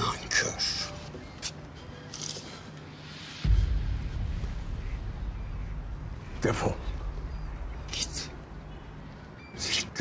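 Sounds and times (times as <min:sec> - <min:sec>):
deep low drone: 0:03.4 - 0:09.2.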